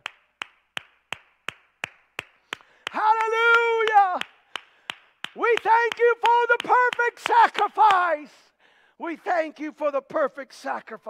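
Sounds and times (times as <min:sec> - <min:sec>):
man clapping hands: 0:00.0 - 0:08.1.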